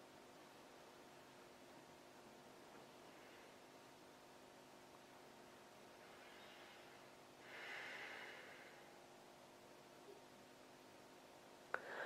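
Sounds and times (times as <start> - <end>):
person breathing faintly: 3.0 - 3.7, 5.9 - 9.1, 11.7 - 12.0.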